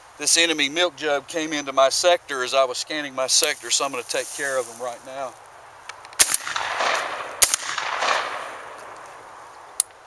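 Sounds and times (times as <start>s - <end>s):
shotgun shots with echo: 6.2s - 8.8s.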